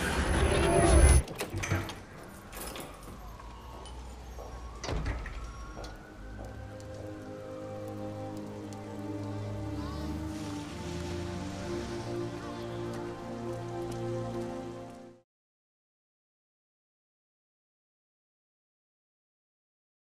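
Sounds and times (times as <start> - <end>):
rain falling on pavement: 2.9 - 15.2
film score sustained chords: 6.0 - 15.2.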